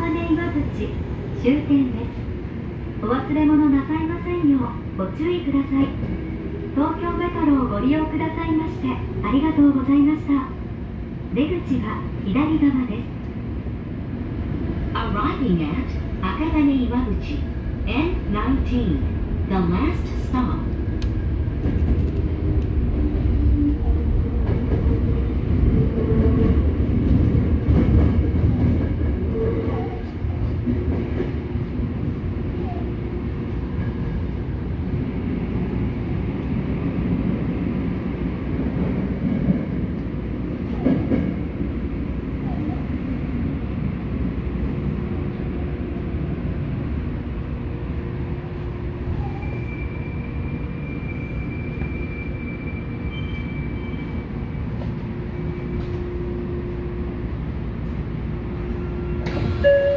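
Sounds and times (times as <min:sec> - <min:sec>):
subway train rumble: 0:00.0 - 0:59.9.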